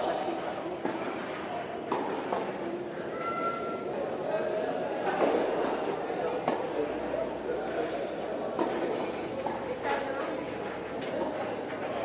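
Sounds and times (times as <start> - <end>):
murmur of spectator chatter: 0.0 - 12.0.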